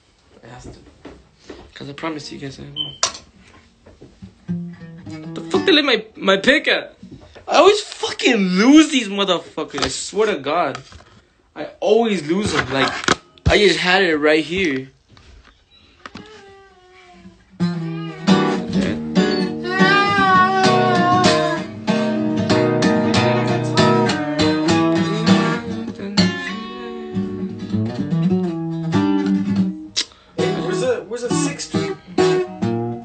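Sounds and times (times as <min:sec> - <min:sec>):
acoustic guitar picking and strumming: 0:03.3 - 0:05.8, 0:17.5 - 0:33.0.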